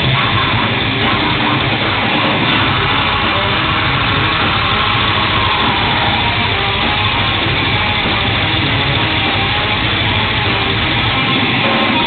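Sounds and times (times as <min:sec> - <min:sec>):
live metal band playing: 0:00.0 - 0:12.0.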